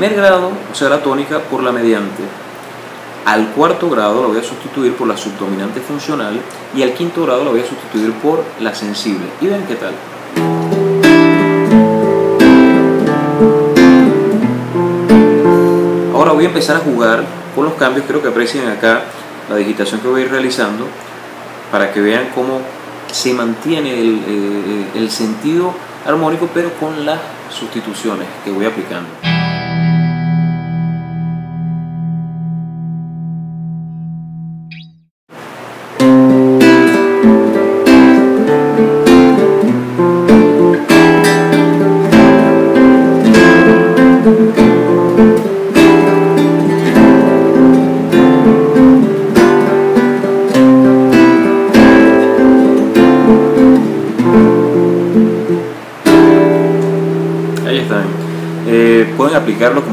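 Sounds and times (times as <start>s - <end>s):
classical guitar playing: 10.3s - 17.8s, 29.2s - 34.9s, 36.0s - 59.9s.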